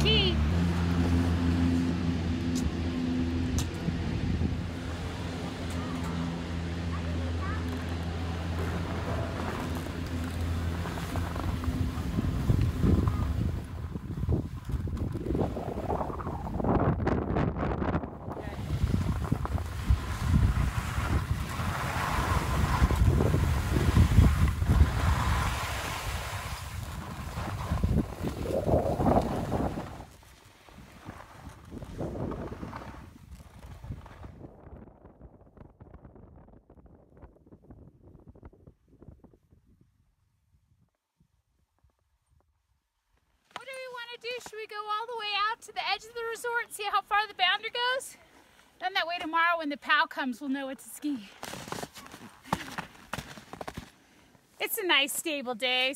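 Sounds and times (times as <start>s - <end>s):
wind rumbling on microphone: 0.0s - 42.4s.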